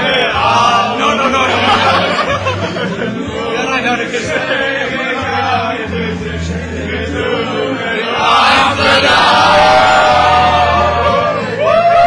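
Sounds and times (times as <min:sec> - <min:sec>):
group of people singing along: 0:00.0 - 0:12.0
song over speakers: 0:00.0 - 0:12.0
steady bass line: 0:00.0 - 0:12.0.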